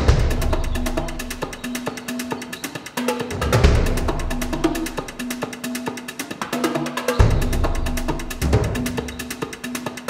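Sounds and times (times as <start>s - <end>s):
music with light percussion ticks: 0.0s - 10.0s.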